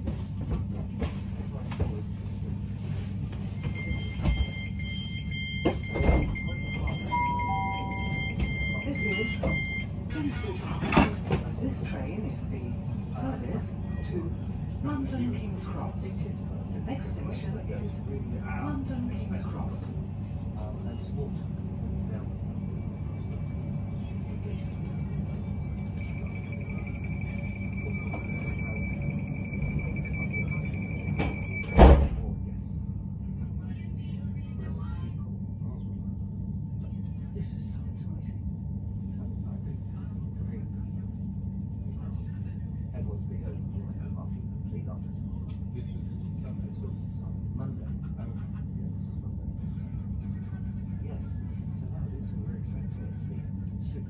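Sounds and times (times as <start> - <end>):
train equipment humming: 0.0 - 32.6
high two-tone beep: 3.6 - 9.9.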